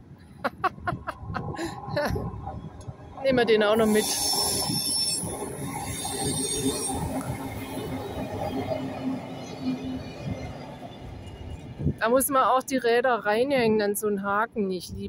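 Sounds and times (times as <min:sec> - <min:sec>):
train wheels rumbling on rails: 0:00.6 - 0:12.9
high-pitched wheel squeal: 0:03.7 - 0:11.6.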